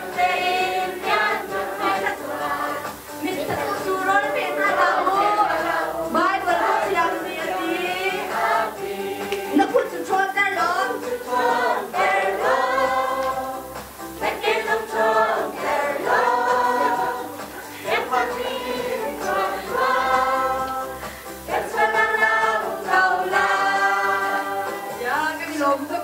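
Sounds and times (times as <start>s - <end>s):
congregation singing: 0.0s - 26.0s.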